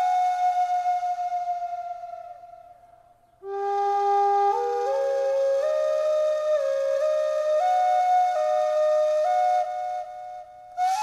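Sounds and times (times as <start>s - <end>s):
slow flute-like melody: 0.0s - 11.0s.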